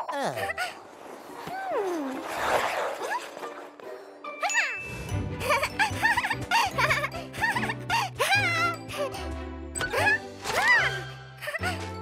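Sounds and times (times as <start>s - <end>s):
tinkling jingle with falling notes: 4.4s - 7.2s
bouncy cartoon music with bass: 4.6s - 12.0s.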